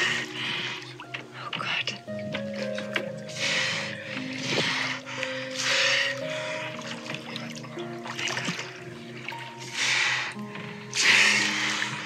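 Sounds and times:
calm music of held notes: 0:00.0 - 0:12.0.

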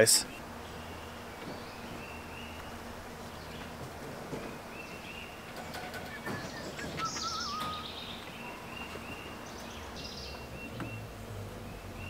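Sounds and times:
birds twittering: 0:00.0 - 0:12.0
wavering bird call: 0:05.6 - 0:10.8
short high bird chirps: 0:06.2 - 0:09.4.

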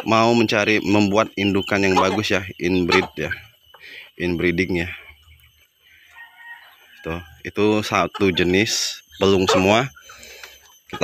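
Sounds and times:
rooster crowing: 0:06.0 - 0:07.8.

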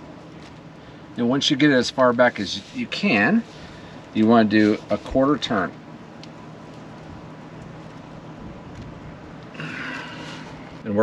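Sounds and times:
outdoor background noise: 0:00.0 - 0:11.0
steady low hum: 0:00.0 - 0:11.0.

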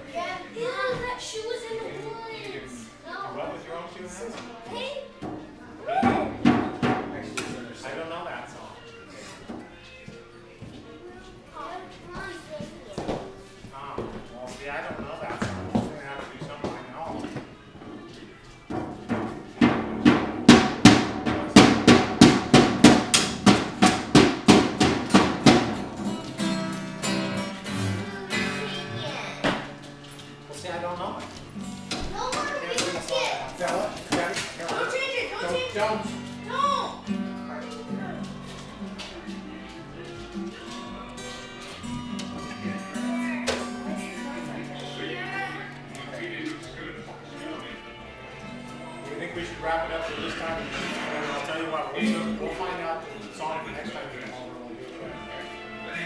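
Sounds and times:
acoustic guitar: 0:00.0 - 0:56.0
child playing drum kit: 0:05.2 - 0:07.6, 0:18.7 - 0:29.9, 0:48.9 - 0:52.8
fast even drum strikes: 0:06.0 - 0:07.4, 0:18.7 - 0:26.5
voices: 0:32.2 - 0:56.0.

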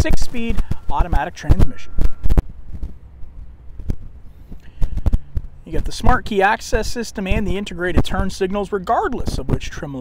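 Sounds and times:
wind rumble on microphone: 0:00.0 - 0:10.0
footsteps on asphalt: 0:02.0 - 0:06.2.

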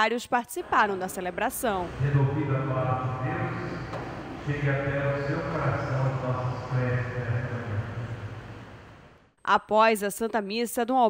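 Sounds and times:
congregation singing: 0:00.6 - 0:08.6.

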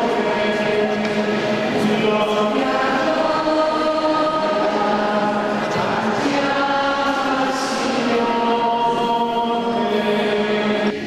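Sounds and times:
group singing a hymn: 0:00.0 - 0:11.0.

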